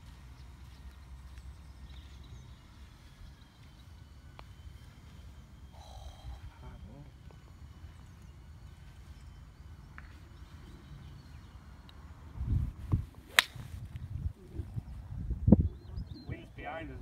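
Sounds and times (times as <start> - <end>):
wind buffeting microphone: 12.2 - 17.0.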